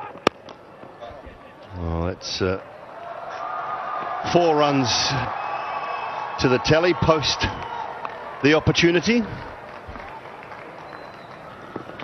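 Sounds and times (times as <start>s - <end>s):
stadium background hum: 0.0s - 12.0s.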